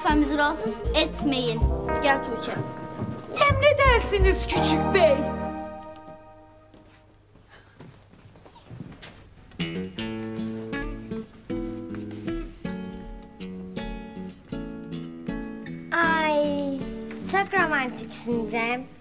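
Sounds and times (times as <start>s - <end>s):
acoustic guitar melody: 0.0s - 7.0s, 9.5s - 19.0s.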